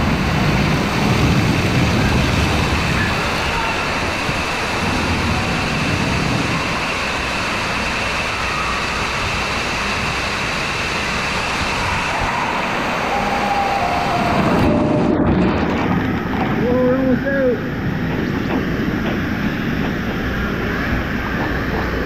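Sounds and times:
water rushing: 0:00.0 - 0:22.0.

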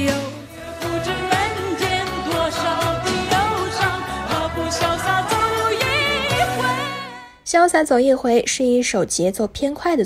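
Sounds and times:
woman singing pop song: 0:00.0 - 0:07.5.

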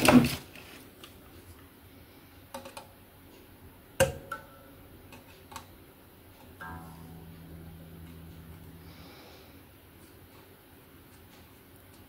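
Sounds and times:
guitar string fret clicks: 0:06.6 - 0:09.6
low guitar string ringing: 0:06.6 - 0:09.9.

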